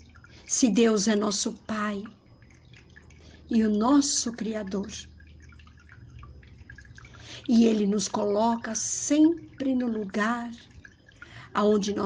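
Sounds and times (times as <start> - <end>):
low steady hum: 0.0 - 12.0
faint ticks: 8.9 - 11.8.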